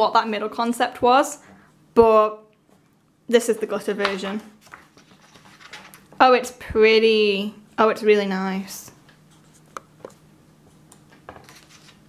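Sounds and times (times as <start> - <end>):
paper page rustling: 4.6 - 6.1, 11.3 - 12.0.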